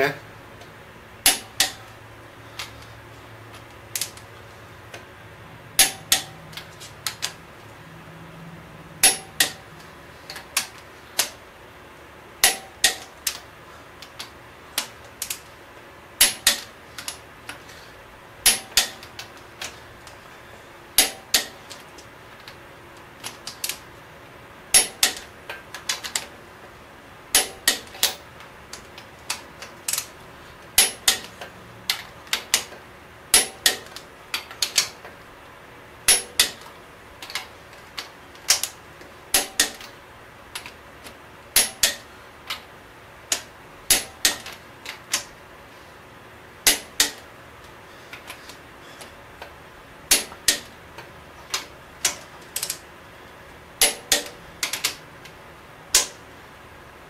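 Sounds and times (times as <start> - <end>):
ratchet clicking: 5.8 - 7.4, 9.0 - 9.6, 16.2 - 17.6, 18.4 - 19.8, 24.7 - 26.3, 27.4 - 30.1, 30.8 - 35.0, 36.1 - 39.9, 41.6 - 42.7, 43.3 - 45.4, 46.6 - 47.2
torque wrench clicking: 24.7 - 26.3, 30.8 - 35.0, 36.1 - 39.9, 41.6 - 42.6, 46.7 - 47.2.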